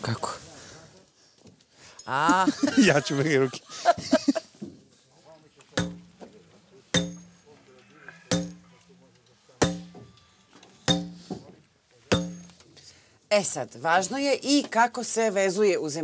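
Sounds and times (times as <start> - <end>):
sledgehammer striking steel rod: 5.8 - 6.2, 7.0 - 7.4, 8.3 - 8.8, 9.6 - 10.0, 10.9 - 11.5, 12.1 - 12.6.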